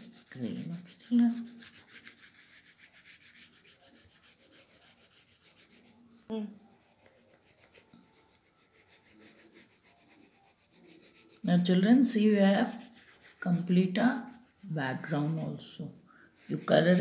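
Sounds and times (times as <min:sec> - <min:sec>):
crayon scratching on paper: 0:00.0 - 0:06.0, 0:06.7 - 0:15.8, 0:16.4 - 0:17.0.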